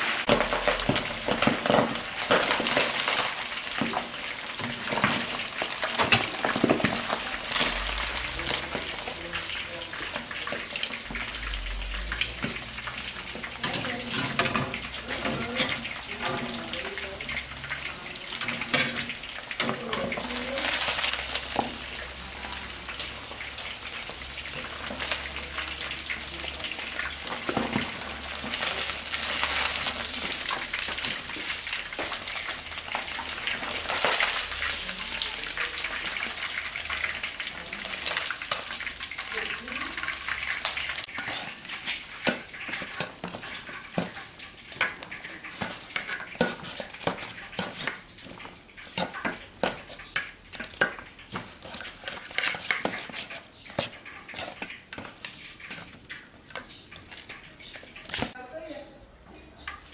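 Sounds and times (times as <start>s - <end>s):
deep-frying sizzle in oil: 0.0s - 59.9s
tongs scraping steel bowl: 38.3s - 58.4s
metal tongs clacking: 39.5s - 58.4s.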